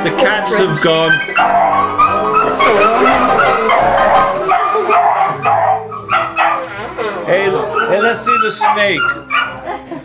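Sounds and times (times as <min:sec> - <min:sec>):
harmonica playing: 0:01.4 - 0:04.9.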